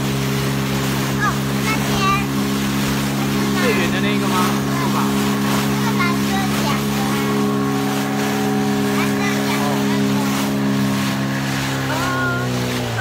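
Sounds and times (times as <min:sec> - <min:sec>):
outboard motor running: 0:00.0 - 0:13.0
water rushing past hull: 0:00.0 - 0:13.0.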